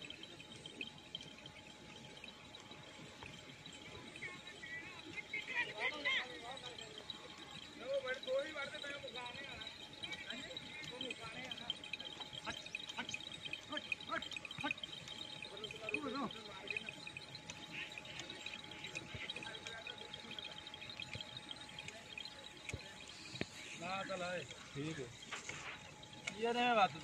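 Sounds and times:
faint steady hum: 0.0s - 27.0s
small birds chirping: 0.0s - 27.0s.

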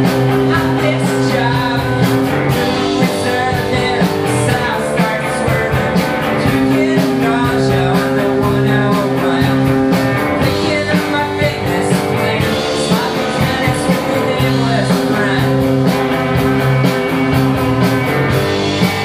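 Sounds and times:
distorted electric guitars: 0.0s - 19.0s
drum kit: 0.0s - 19.0s.

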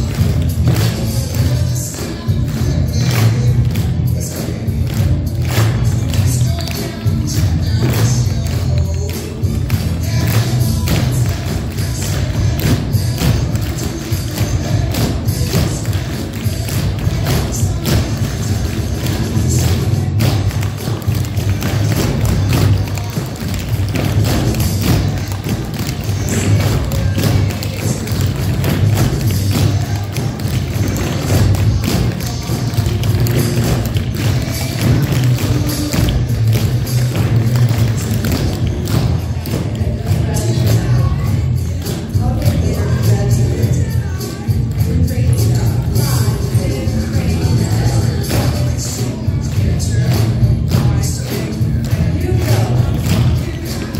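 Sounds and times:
recorded music with bass beat: 0.0s - 53.9s.

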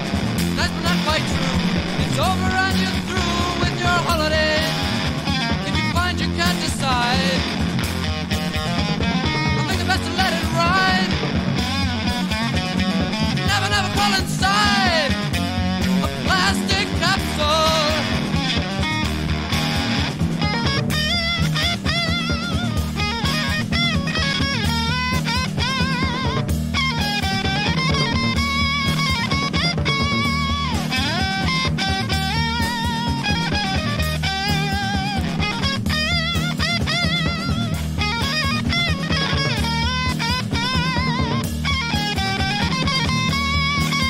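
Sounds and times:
bass guitar: 0.0s - 44.0s
drum kit beat: 0.0s - 44.0s
electric lead guitar bending notes: 0.0s - 44.0s.

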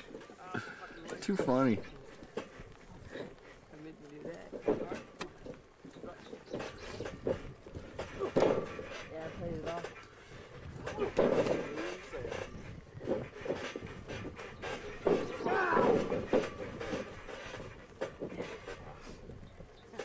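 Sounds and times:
people talking and calling out: 0.0s - 20.0s
short knocks: 4.5s - 19.3s.

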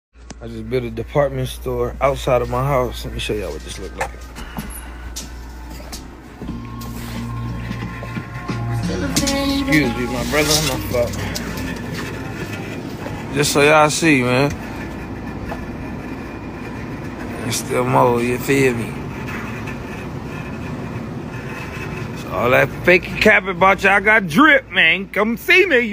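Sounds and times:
low room hum: 0.2s - 25.9s.

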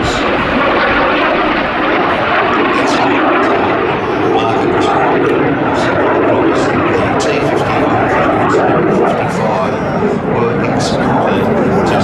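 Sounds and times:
jet engine roaring: 0.0s - 12.0s.

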